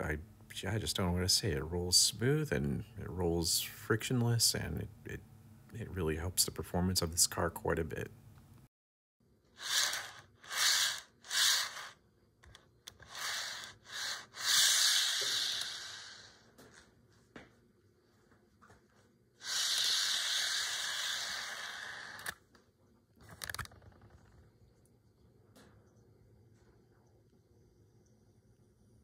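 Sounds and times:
model train car rolling on track: 0:12.8 - 0:16.3, 0:19.4 - 0:22.4.

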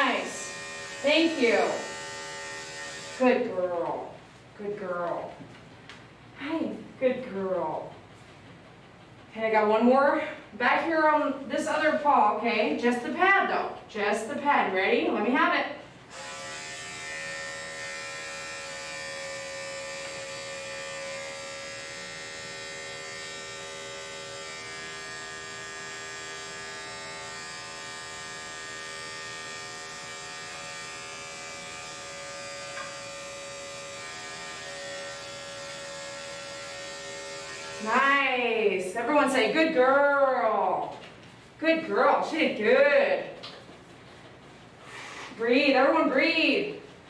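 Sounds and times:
electric clipper humming: 0:00.0 - 0:04.1, 0:16.1 - 0:38.6.

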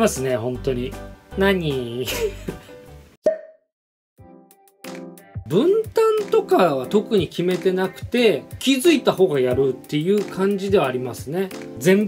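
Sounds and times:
pop sound effect: 0:03.2 - 0:03.7.

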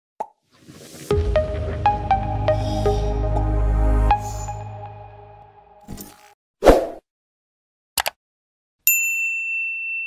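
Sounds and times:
logo jingle: 0:01.1 - 0:05.8.

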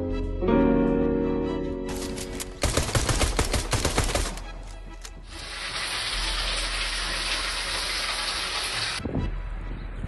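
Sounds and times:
water spraying hiss: 0:05.3 - 0:09.0.

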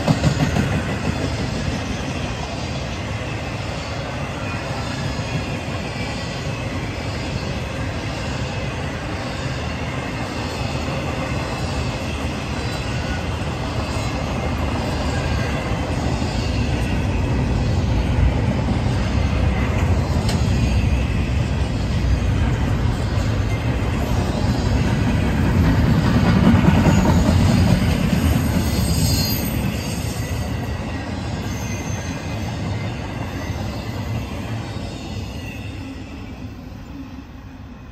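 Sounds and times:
train wheels rumbling on rails: 0:00.0 - 0:37.9.

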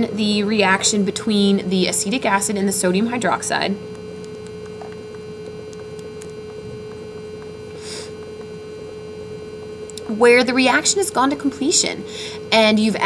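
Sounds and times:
steady electrical hum: 0:00.0 - 0:13.0.

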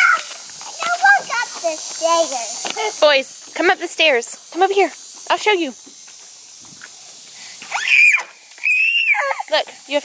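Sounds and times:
toddler squealing: 0:07.7 - 0:09.5.

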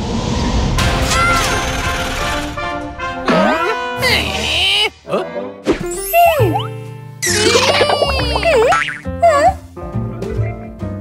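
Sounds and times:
cartoon background music: 0:00.8 - 0:11.0.

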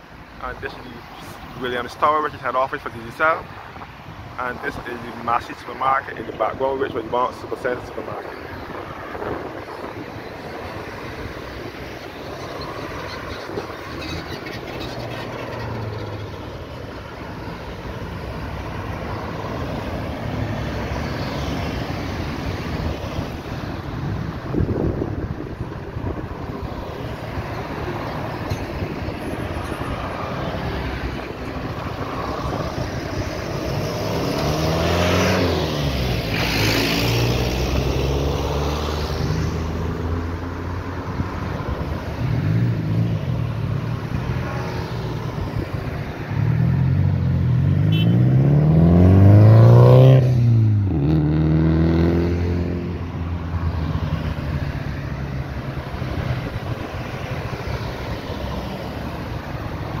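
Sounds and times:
cars driving past: 0:00.0 - 1:00.0.

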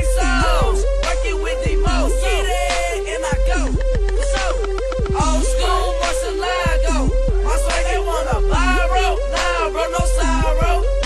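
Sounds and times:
deep bass: 0:00.0 - 0:11.0
rapping over a beat: 0:00.0 - 0:11.0.

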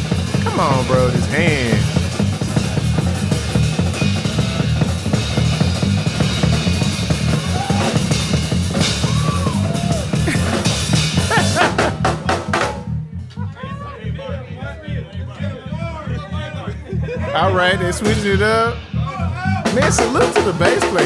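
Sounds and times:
drum kit played fast: 0:00.0 - 0:12.9, 0:17.4 - 0:21.0
bass guitar line: 0:00.0 - 0:21.0.

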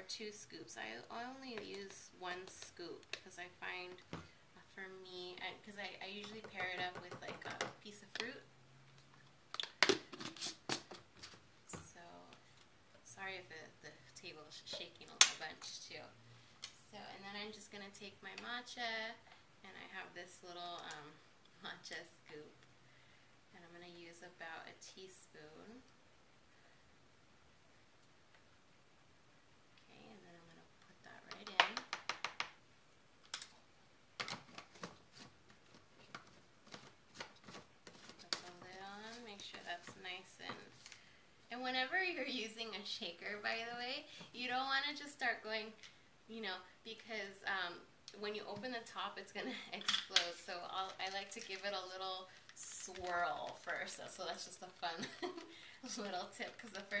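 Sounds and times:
person talking: 0:41.5 - 0:57.0.

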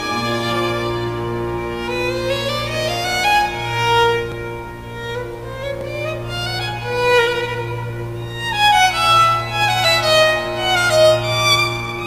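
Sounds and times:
slow violin melody: 0:00.0 - 0:12.0.

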